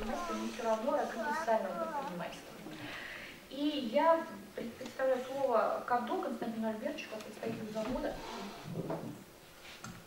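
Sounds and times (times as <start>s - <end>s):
person speaking: 0.0s - 2.9s.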